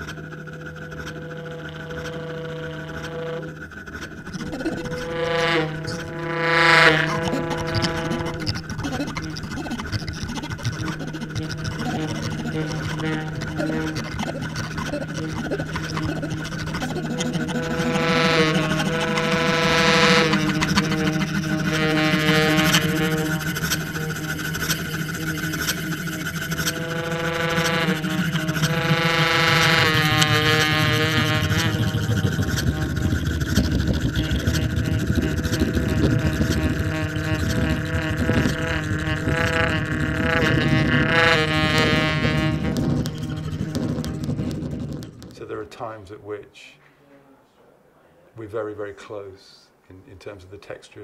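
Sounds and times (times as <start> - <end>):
baritone saxophone: 0.0 - 46.0
bowed daxophone: 0.0 - 46.4.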